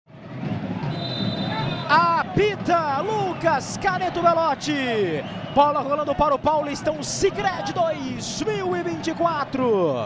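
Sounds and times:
stadium crowd noise: 0.1 - 10.0
referee's whistle: 0.8 - 2.0, 5.0 - 5.9
commentator speaking: 1.9 - 10.0.

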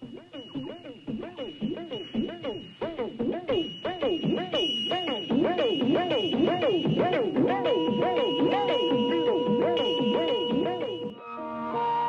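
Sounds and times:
thin high whine: 0.0 - 12.0
wavering swooping tone: 0.0 - 12.0.

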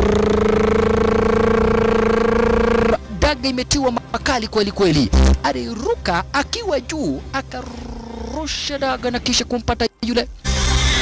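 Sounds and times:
steady pitched tone: 0.0 - 3.0.

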